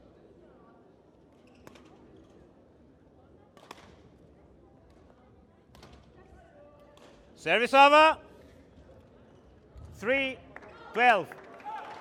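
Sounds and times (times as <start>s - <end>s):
large hall ambience: 0.0s - 12.0s.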